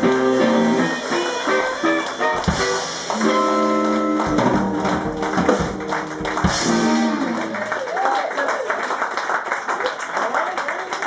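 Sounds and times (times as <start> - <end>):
drum kit hits: 0.0 - 7.9
electric guitars playing funk: 0.0 - 7.9.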